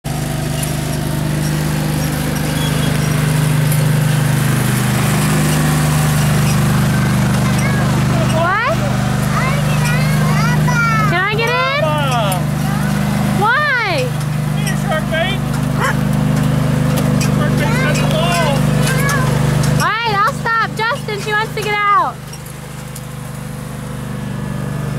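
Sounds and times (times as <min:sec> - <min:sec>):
small engine running: 0:00.0 - 0:24.9.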